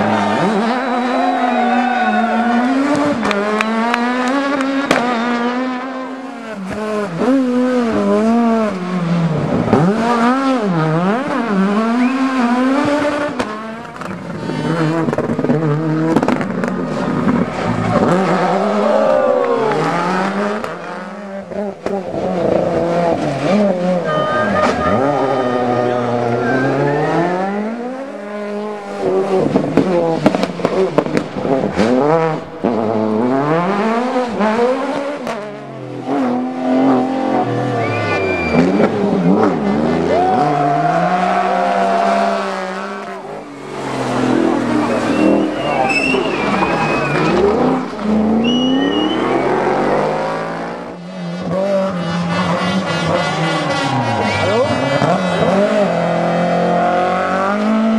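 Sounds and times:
rally car engines revving: 0:00.0 - 0:57.9
exhaust pops and crackles: 0:12.8 - 0:18.1, 0:29.4 - 0:33.2
tyre squeals: 0:37.7 - 0:38.8, 0:44.7 - 0:49.8.

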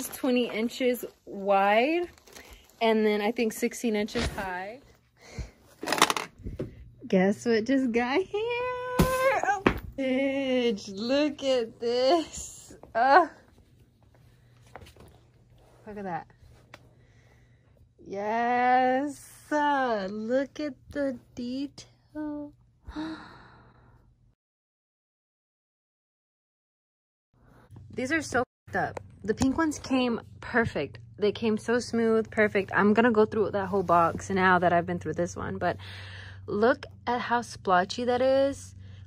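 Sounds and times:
crinkling rustle: 0:00.0 - 0:03.4
woman sighing: 0:22.9 - 0:23.8.

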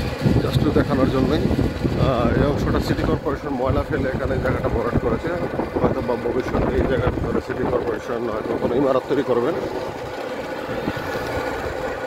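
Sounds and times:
road and traffic noise: 0:00.0 - 0:12.0.

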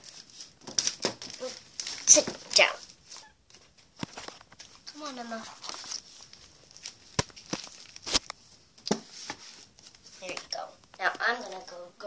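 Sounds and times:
soft rustles against fabric: 0:01.4 - 0:11.9.

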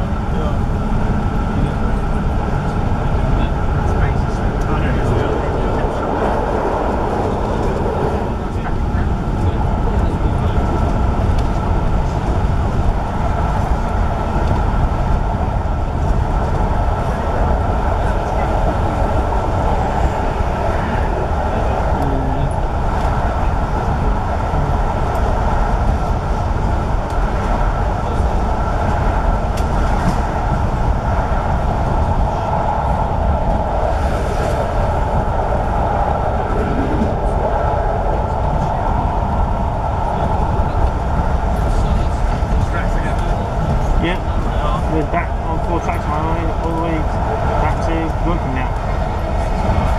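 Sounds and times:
train wheels rumbling on rails: 0:00.0 - 0:49.9.

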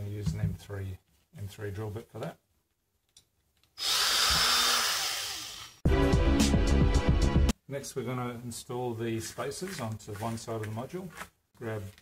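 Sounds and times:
power drill boring plastic: 0:03.8 - 0:05.8
background music with a beat: 0:05.8 - 0:07.6.

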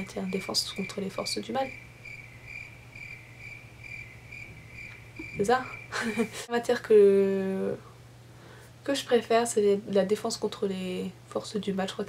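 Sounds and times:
insect chirping: 0:00.0 - 0:06.3
faint low hum: 0:00.0 - 0:12.0.

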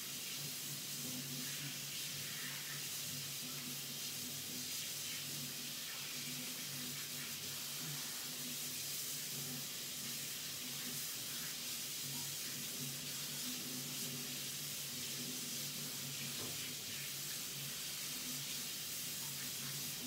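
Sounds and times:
tap water running into sink: 0:00.0 - 0:20.0.

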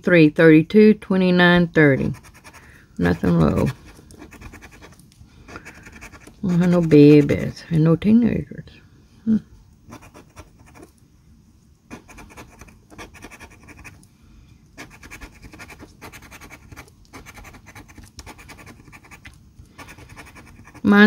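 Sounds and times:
coin scratching lottery ticket: 0:02.0 - 0:07.5, 0:10.0 - 0:10.9, 0:11.9 - 0:14.0, 0:14.8 - 0:21.0.

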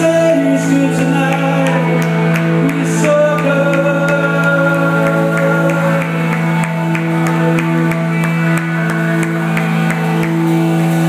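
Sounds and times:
keyboard and guitar chords: 0:00.0 - 0:11.0.

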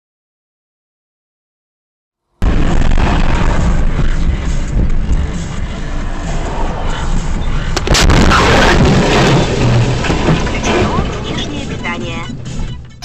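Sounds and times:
car engine: 0:02.4 - 0:13.0
loud clattering noise: 0:02.4 - 0:13.0
loud crash: 0:02.4 - 0:13.0
music: 0:02.4 - 0:13.0
road noise: 0:02.4 - 0:13.0.

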